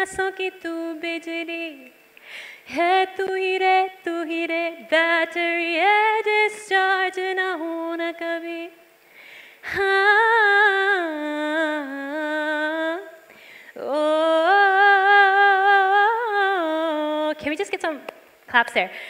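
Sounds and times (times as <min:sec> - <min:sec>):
short breaths: 0:02.2 - 0:02.7, 0:09.0 - 0:09.6, 0:13.3 - 0:13.8.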